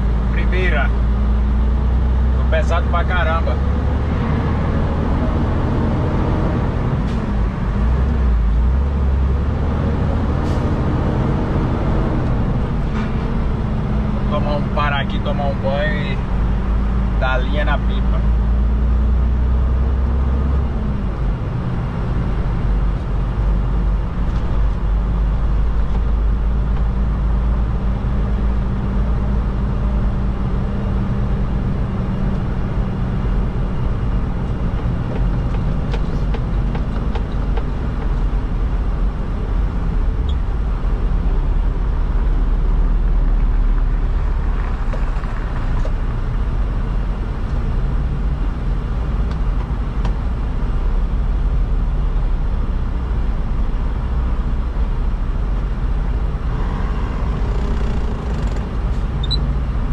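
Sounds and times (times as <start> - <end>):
truck diesel engine droning: 0.0 - 59.9.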